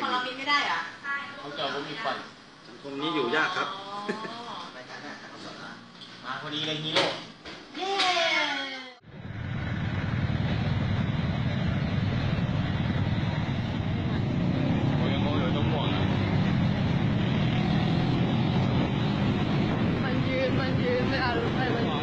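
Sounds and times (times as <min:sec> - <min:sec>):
air rushing past: 0:09.0 - 0:21.9.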